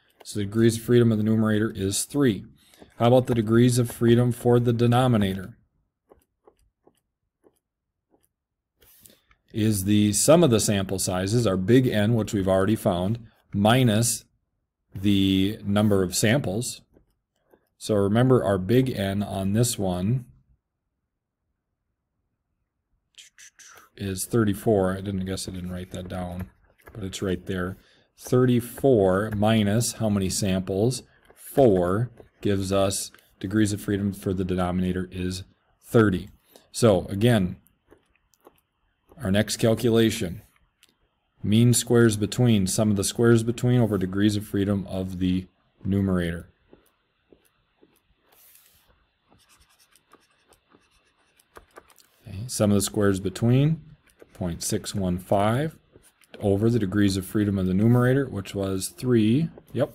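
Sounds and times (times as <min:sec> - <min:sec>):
stylus tapping and scratching: 0:00.0 - 0:14.1, 0:14.9 - 0:19.6, 0:23.2 - 0:59.9
man speaking: 0:00.1 - 0:05.6, 0:09.5 - 0:14.3, 0:14.9 - 0:17.0, 0:17.8 - 0:20.4, 0:23.2 - 0:37.6, 0:39.2 - 0:40.5, 0:41.4 - 0:46.6, 0:52.1 - 0:59.9.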